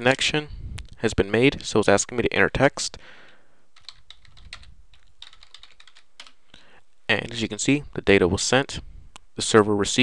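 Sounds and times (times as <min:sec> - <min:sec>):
faint typing on keyboard: 0:03.2 - 0:06.7.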